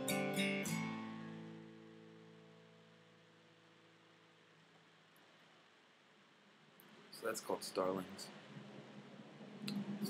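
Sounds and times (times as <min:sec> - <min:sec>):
acoustic guitar chord: 0:00.0 - 0:03.1
faint steady hiss: 0:00.0 - 0:10.0.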